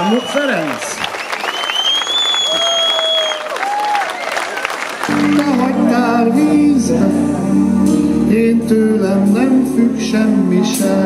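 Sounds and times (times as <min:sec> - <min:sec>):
audience applauding and cheering: 0:00.0 - 0:06.1.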